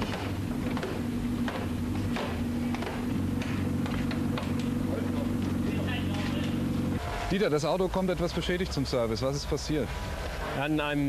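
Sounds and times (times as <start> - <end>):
sledgehammer striking car body panels: 0.0 - 4.7
low machine hum: 0.0 - 10.6.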